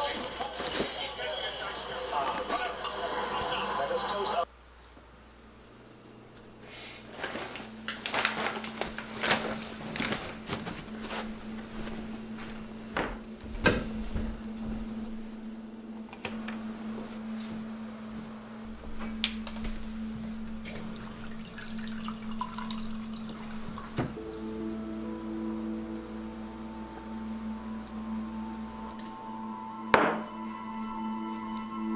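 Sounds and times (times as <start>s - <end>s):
rustling: 0.0s - 2.6s, 6.8s - 21.7s
steady low hum: 0.0s - 31.9s.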